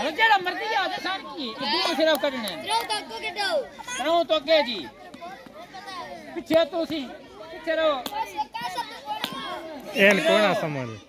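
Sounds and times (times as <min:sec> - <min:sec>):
children's voices and calls: 0:00.0 - 0:11.0.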